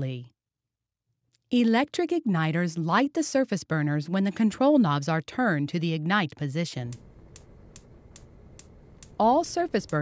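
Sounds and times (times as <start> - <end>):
spark igniter clicking: 6.9 - 10.0.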